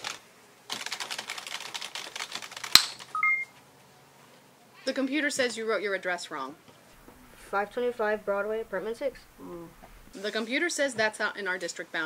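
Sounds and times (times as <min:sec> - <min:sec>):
rapid typing on keyboard: 0:00.0 - 0:03.4.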